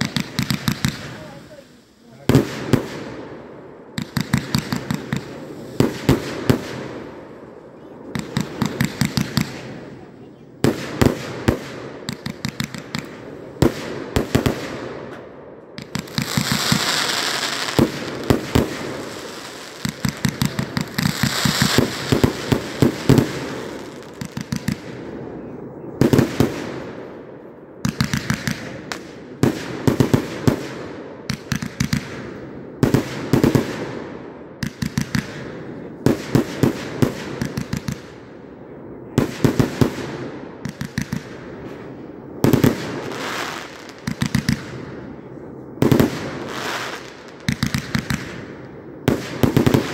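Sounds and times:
firework hissing: 0:00.0 - 0:02.7, 0:16.0 - 0:24.1
firework reports and bursts: 0:00.0 - 0:49.9.

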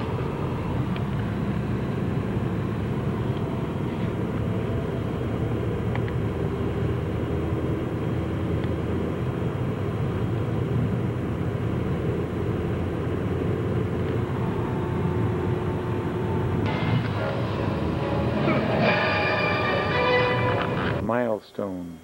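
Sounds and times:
car engine hum: 0:00.0 - 0:21.0
tyres rumbling on road: 0:00.0 - 0:21.0.

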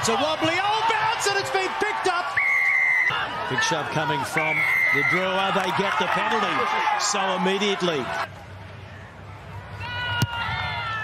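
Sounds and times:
stadium crowd background: 0:00.0 - 0:11.0.

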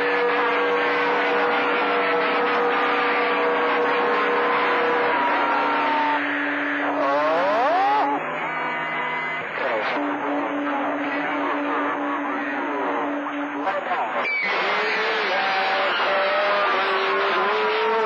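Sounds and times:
loud radio static: 0:00.0 - 0:18.0
whistling heterodyne tones: 0:14.2 - 0:14.6.

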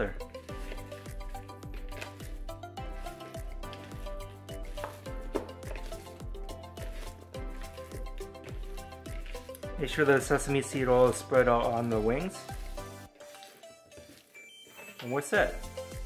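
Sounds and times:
background music with steady beat: 0:00.0 - 0:16.0
wet squishing of raw chicken: 0:00.4 - 0:14.4.

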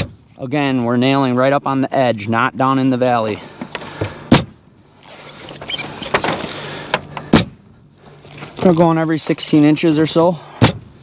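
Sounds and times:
pneumatic nailer firing: 0:04.3 - 0:04.6, 0:05.6 - 0:07.6.

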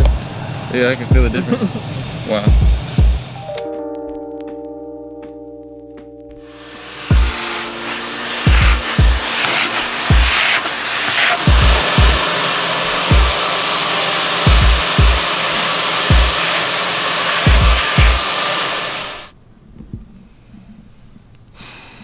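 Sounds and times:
music with kick-drum beat: 0:01.1 - 0:01.4, 0:02.5 - 0:04.8, 0:07.1 - 0:07.5, 0:08.5 - 0:09.4, 0:10.1 - 0:10.4, 0:11.4 - 0:12.3, 0:13.1 - 0:13.4, 0:14.5 - 0:15.2, 0:16.1 - 0:16.4, 0:17.5 - 0:18.3
vacuum hose rushing air: 0:06.4 - 0:19.4.

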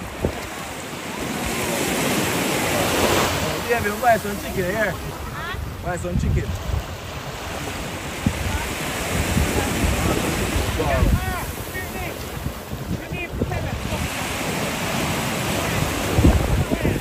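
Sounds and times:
small waves washing onto beach: 0:00.0 - 0:17.0
wind buffeting microphone: 0:00.0 - 0:17.0.

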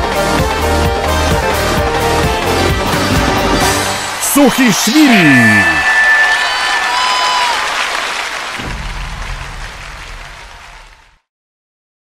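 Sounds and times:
audience applauding: 0:03.0 - 0:11.2.

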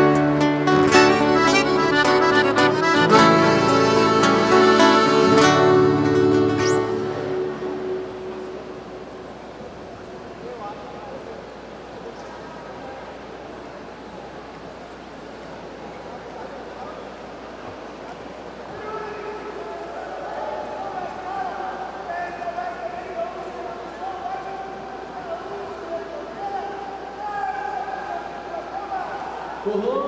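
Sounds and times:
soft melody of held notes: 0:00.0 - 0:09.4
murmur of voices: 0:00.0 - 0:30.0.

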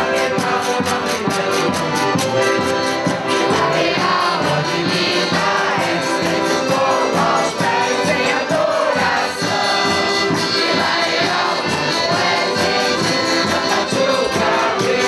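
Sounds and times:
regular percussion beat: 0:00.0 - 0:15.0
women singing together: 0:03.4 - 0:15.0.

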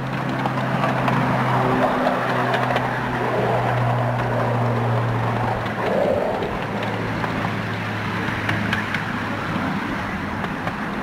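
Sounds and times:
wheels rumbling on rail: 0:00.0 - 0:11.0.

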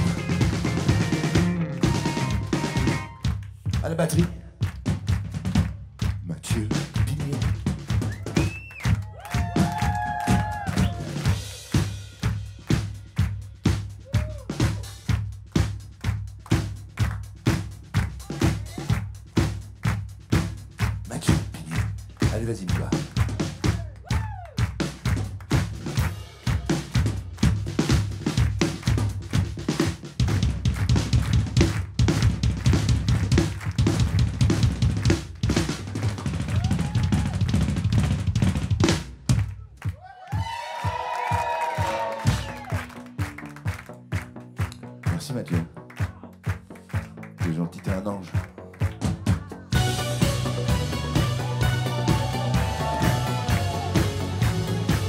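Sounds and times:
bass line: 0:00.0 - 0:39.9, 0:41.0 - 0:55.0
drum kit groove: 0:00.0 - 0:55.0.

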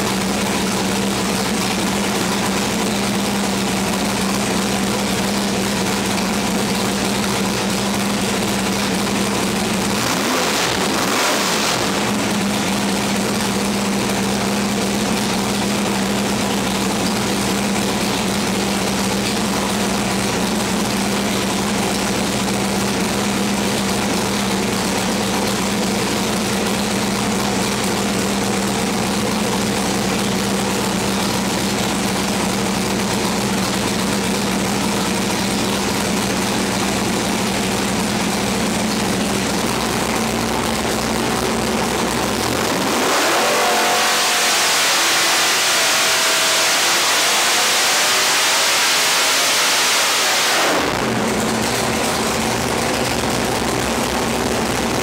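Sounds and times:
engine running on a dyno: 0:00.0 - 0:55.0.

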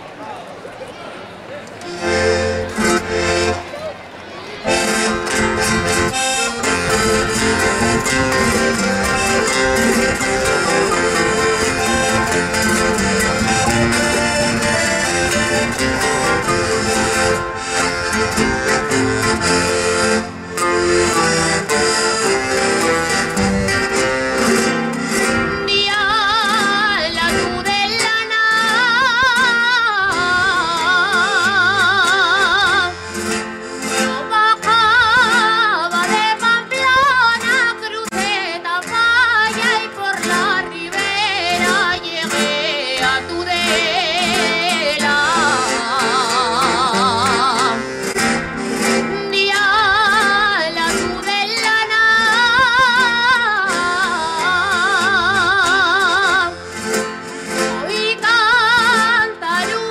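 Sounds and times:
band playing with guitar: 0:01.6 - 0:59.9
woman singing with vibrato: 0:25.3 - 0:33.2, 0:33.8 - 0:59.9.

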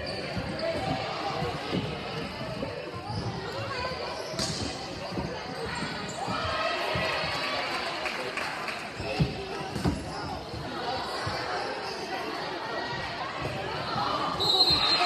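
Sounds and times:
people talking and calling out: 0:00.0 - 0:15.0.

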